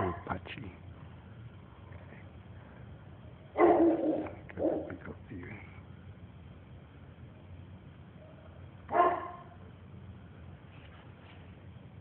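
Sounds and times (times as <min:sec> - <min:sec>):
dog barking: 0:00.0 - 0:00.3, 0:03.5 - 0:05.0, 0:08.2 - 0:09.6
faint background noise: 0:00.0 - 0:12.0.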